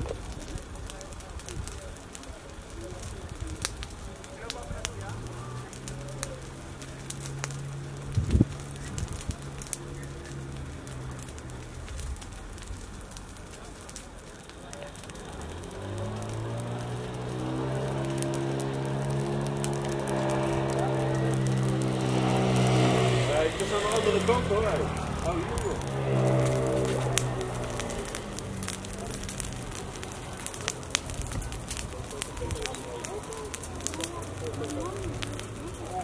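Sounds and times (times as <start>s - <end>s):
grass fire crackling and popping: 0.0s - 36.0s.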